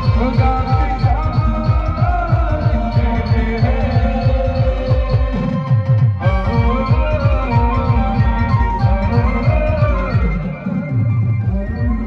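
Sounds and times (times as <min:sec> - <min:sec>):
bass drum beating fast: 0:00.0 - 0:10.6
live band music: 0:00.0 - 0:12.0.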